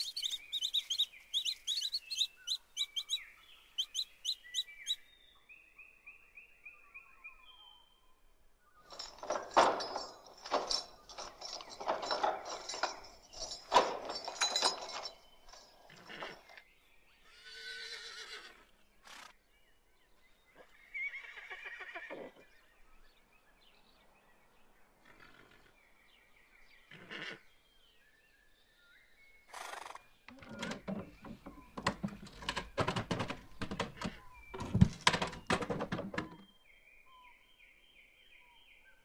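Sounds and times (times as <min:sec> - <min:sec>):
horse whinnying: 0:15.9 - 0:16.6, 0:17.3 - 0:18.7, 0:20.9 - 0:22.5, 0:26.9 - 0:27.5.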